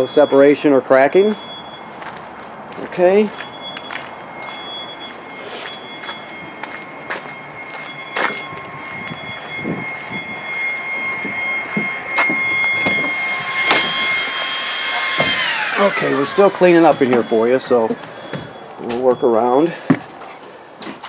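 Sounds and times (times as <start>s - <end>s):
footsteps: 1.3s - 14.2s, 15.1s - 21.0s
vacuum cleaner motor whining: 8.5s - 18.6s.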